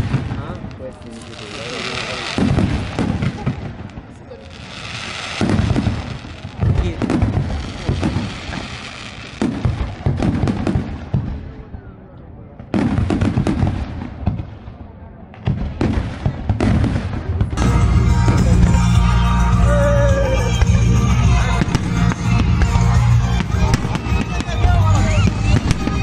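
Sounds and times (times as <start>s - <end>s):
fireworks crackling and hiss: 0.0s - 11.8s, 12.6s - 26.0s
fireworks booms: 0.0s - 26.0s.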